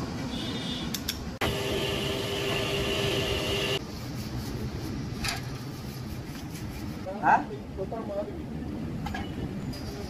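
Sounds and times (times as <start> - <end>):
machine hum with high whine: 1.4 - 3.8.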